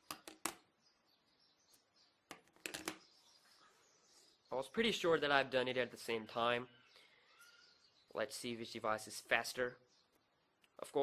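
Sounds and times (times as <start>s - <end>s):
small knocks and clicks: 2.3s - 3.0s.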